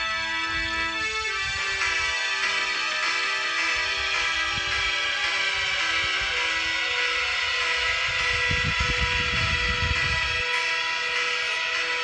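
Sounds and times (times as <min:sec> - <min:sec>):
background music of held chords: 0:00.0 - 0:12.0
low rumble: 0:07.8 - 0:10.5.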